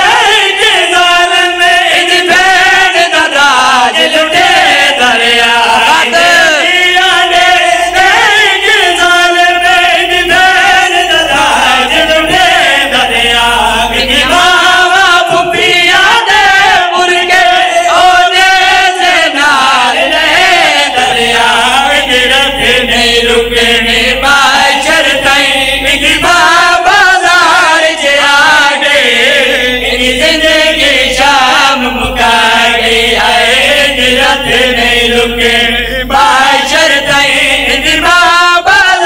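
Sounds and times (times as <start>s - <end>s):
low electrical hum: 0.0s - 16.2s, 16.8s - 39.0s
men chanting a lament over loudspeakers: 0.0s - 39.0s.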